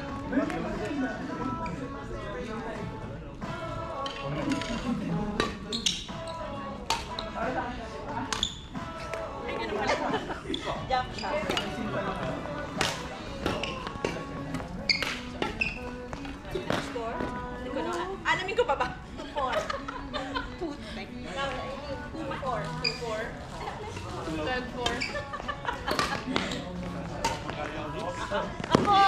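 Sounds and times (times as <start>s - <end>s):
voices talking: 0.0s - 29.0s
rackets hitting shuttlecock: 6.9s - 7.1s, 12.7s - 14.2s, 25.9s - 26.4s, 27.2s - 27.6s, 28.6s - 29.0s.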